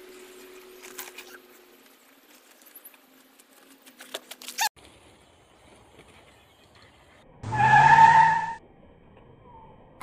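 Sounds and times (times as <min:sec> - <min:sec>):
tyre skid screech: 0:07.4 - 0:08.6
low hum: 0:08.4 - 0:10.0.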